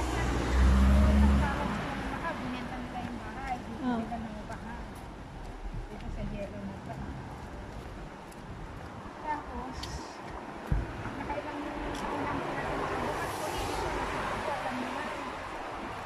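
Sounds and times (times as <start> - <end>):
tyres hissing on wet road: 12.5 - 16.0.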